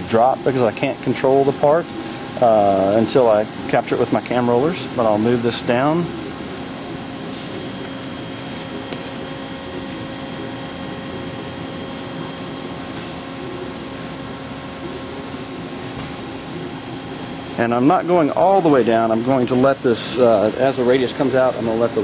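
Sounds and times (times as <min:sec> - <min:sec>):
machine drive humming: 0:00.0 - 0:22.0
thin steady whine: 0:00.0 - 0:22.0.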